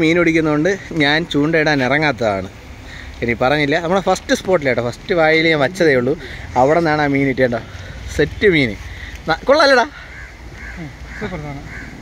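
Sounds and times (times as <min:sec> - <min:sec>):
crows cawing: 0:07.6 - 0:08.1, 0:08.8 - 0:12.0.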